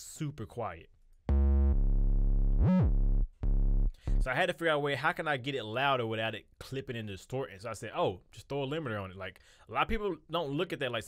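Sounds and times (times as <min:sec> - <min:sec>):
sliding bass notes: 0:01.3 - 0:04.3.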